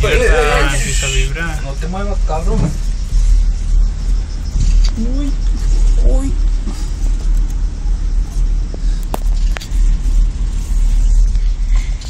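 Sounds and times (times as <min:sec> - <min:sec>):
low rumbling in cable car cabin: 0:00.0 - 0:12.0.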